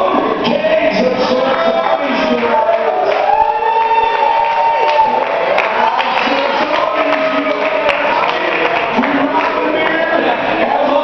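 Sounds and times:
audience talking: 0:00.0 - 0:11.0.

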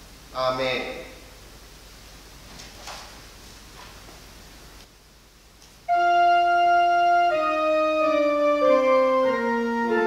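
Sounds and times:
organ chord: 0:05.9 - 0:10.0.

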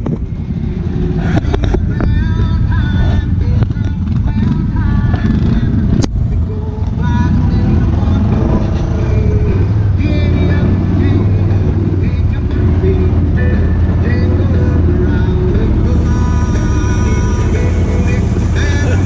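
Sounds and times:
vehicle engine low rumble: 0:00.0 - 0:19.0.

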